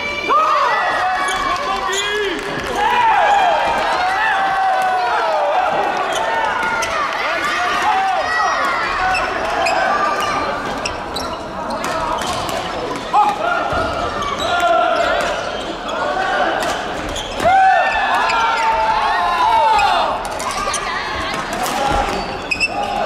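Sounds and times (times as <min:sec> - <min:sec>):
shoes squeaking on wooden floor: 0:09.0 - 0:13.1, 0:17.0 - 0:17.5.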